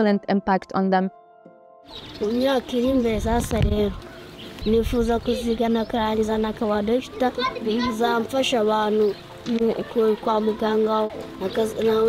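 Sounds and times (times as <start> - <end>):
boy speaking: 2.2 - 4.0, 4.6 - 12.0.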